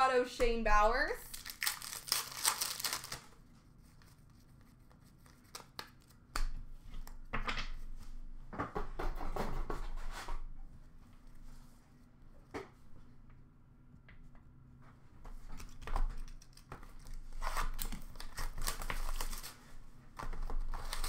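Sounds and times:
wrappers tearing and crinkling: 1.3 - 3.4, 16.2 - 19.6, 20.3 - 21.0
cards being handled: 1.4 - 7.4.

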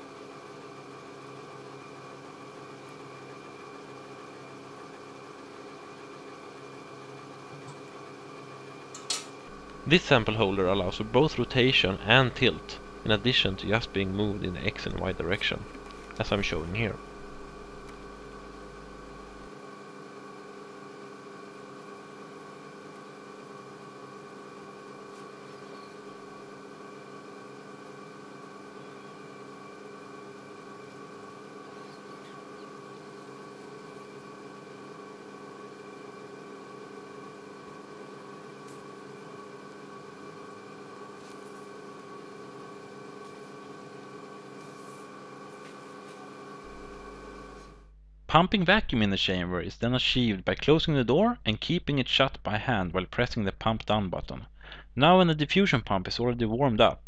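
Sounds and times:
vacuum pumps humming: 0.0 - 48.0.

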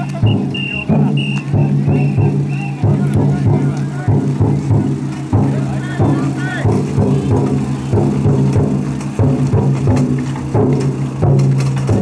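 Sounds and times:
voices of people: 0.0 - 10.6
big drum beating: 0.0 - 12.0.

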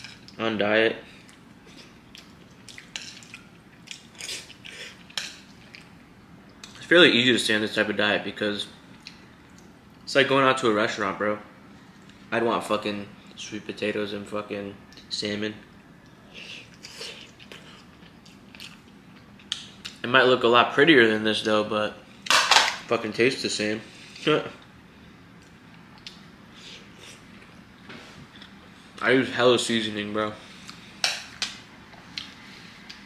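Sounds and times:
person chewing food: 1.2 - 5.9, 16.4 - 19.6.

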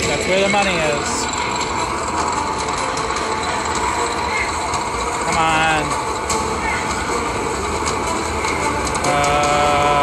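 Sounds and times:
slot machine wheel spinning: 0.0 - 10.0.

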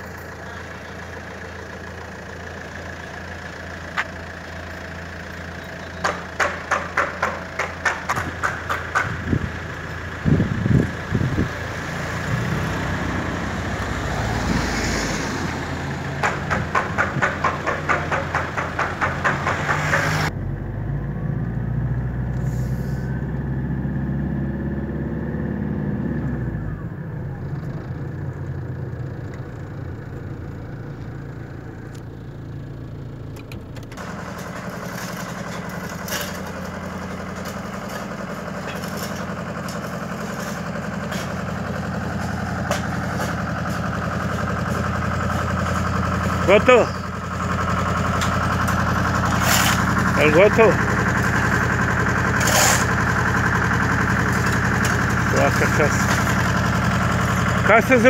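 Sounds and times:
car engine running: 0.0 - 58.0
road noise: 0.0 - 58.0.

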